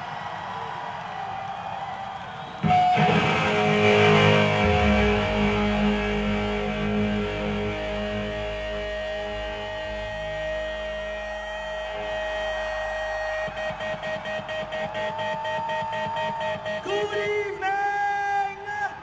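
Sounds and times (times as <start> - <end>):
distorted electric guitar chord: 2.6 - 16.8
sustained tone: 2.6 - 16.9.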